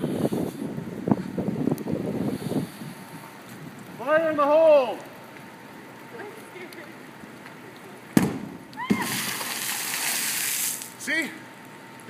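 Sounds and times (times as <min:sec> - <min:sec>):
water spraying and splashing: 0:08.8 - 0:11.0.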